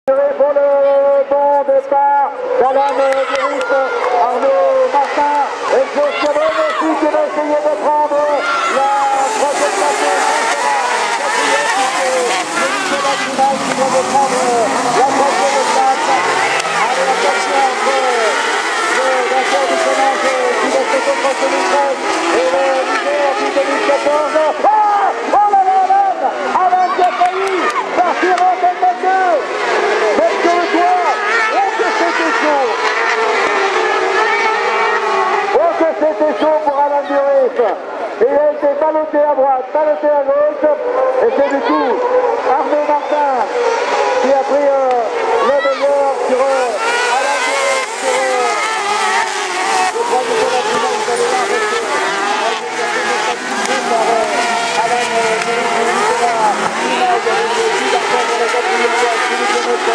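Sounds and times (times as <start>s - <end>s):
racing buggy engines revving: 0.1s - 59.9s.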